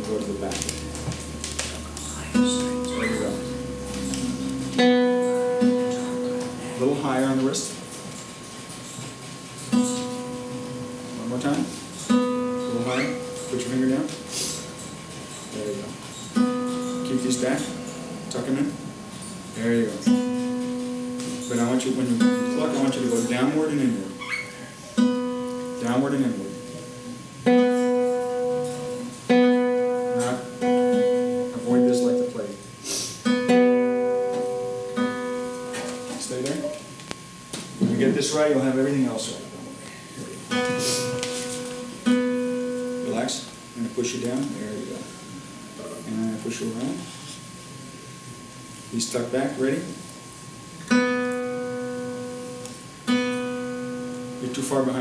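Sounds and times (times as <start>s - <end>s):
classical guitar plucked notes: 0.0s - 6.8s, 9.7s - 11.2s, 12.0s - 14.5s, 16.3s - 18.4s, 20.0s - 32.3s, 33.2s - 36.2s, 40.5s - 43.2s, 50.8s - 54.6s.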